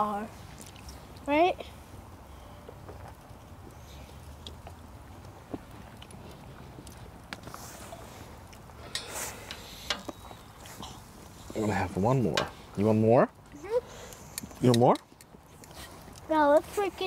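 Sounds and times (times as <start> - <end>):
wood fire crackling: 0.0 - 17.0.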